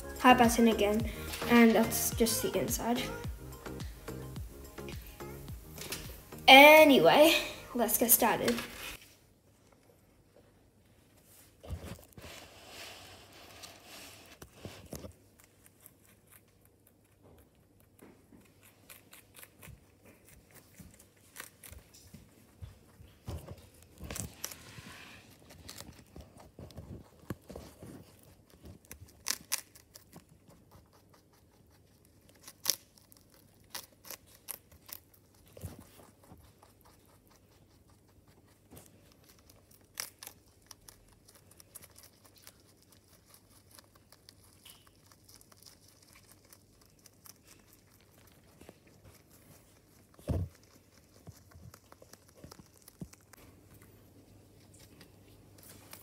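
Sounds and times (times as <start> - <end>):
rabbit chewing leaves: 0.0 - 56.0.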